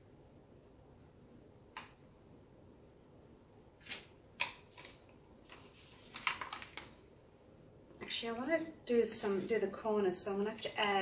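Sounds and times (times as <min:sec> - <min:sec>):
crackly plastic rustles: 0:03.8 - 0:07.1.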